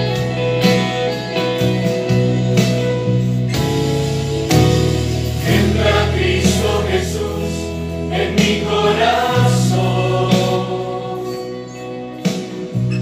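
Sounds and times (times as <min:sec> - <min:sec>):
worship song singing: 0:04.9 - 0:12.8.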